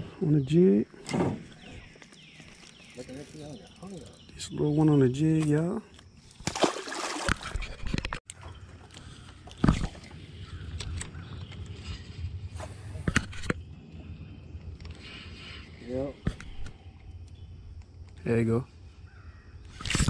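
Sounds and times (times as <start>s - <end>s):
fish splashing into water: 6.4s - 7.6s.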